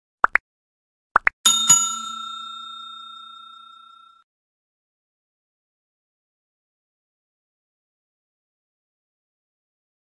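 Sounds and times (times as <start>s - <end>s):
bell ringing: 1.5s - 4.2s.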